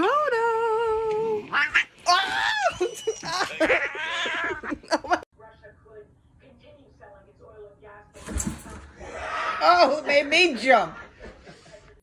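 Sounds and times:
cat yowling: 1.5s - 4.6s.

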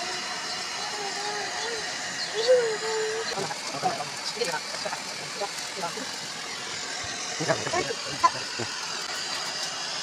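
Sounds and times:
people talking: 0.8s - 6.1s, 7.4s - 8.7s.

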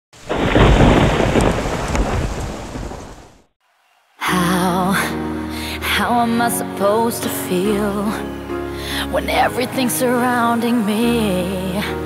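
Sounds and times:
rain: 0.2s - 3.5s
thunder rumbling: 0.2s - 3.5s.

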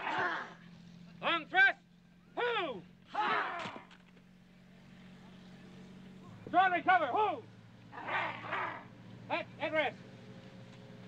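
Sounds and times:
low film soundtrack hum: 0.0s - 11.0s
man barking a command: 8.0s - 9.9s.

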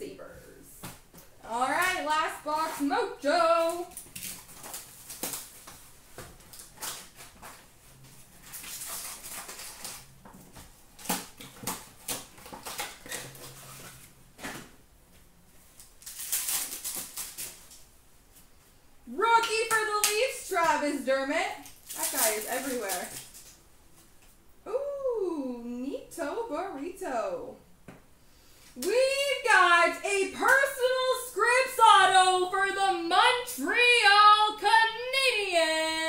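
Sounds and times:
person speaking: 1.4s - 3.9s, 19.1s - 23.2s, 28.8s - 36.0s
foil and cardboard crinkling: 1.5s - 14.7s, 15.6s - 17.9s, 21.6s - 23.6s.

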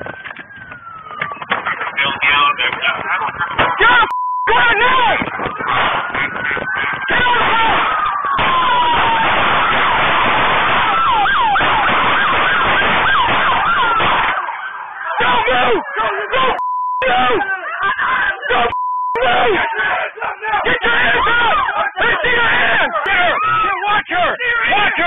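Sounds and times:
police car siren: 0.0s - 22.0s, 22.8s - 23.8s
loud shouting: 1.9s - 25.0s
censor bleep: 4.1s - 4.7s, 16.6s - 17.2s, 18.7s - 19.2s.

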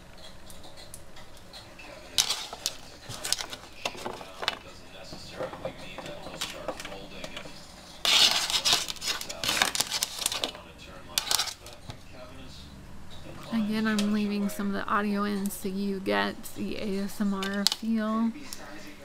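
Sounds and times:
utensils clicking against plate: 0.0s - 4.7s, 5.4s - 11.9s.

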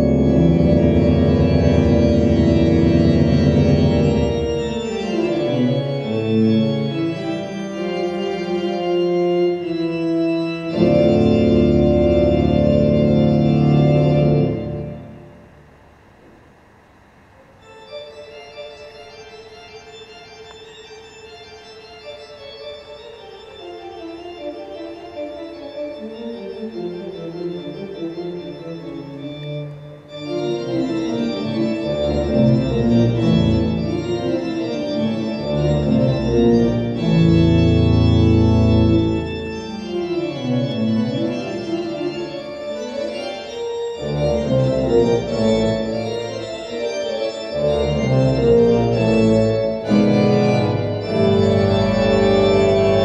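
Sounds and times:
organ-like held chord: 0.0s - 53.0s.

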